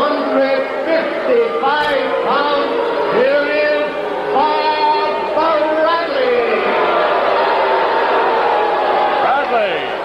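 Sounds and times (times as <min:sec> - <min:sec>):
announcer's amplified voice: 0:00.0 - 0:06.8
crowd noise: 0:00.0 - 0:10.0.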